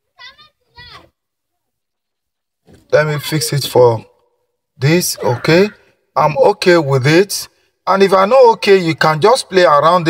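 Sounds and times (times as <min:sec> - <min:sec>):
person speaking: 0:02.7 - 0:04.2, 0:04.8 - 0:10.0.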